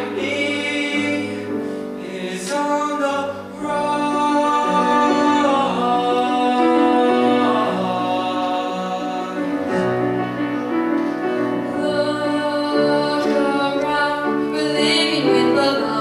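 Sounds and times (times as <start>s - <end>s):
boy singing: 2.2s - 9.4s, 11.8s - 16.0s.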